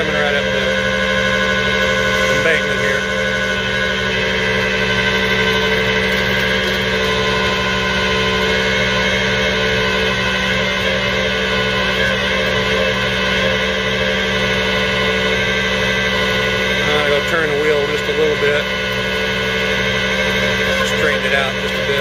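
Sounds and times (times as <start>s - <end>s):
truck engine running: 0.0s - 22.0s
winch whine: 0.0s - 22.0s.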